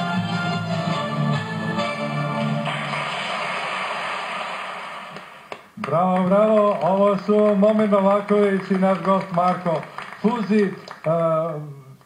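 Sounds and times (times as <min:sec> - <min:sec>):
audience applause: 0:02.6 - 0:11.2.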